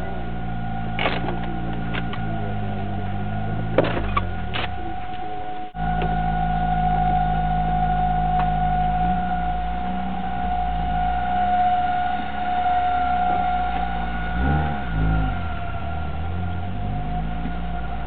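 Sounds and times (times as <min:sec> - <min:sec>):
car engine running: 0:00.0 - 0:18.0
high-pitched whistle: 0:04.2 - 0:18.0.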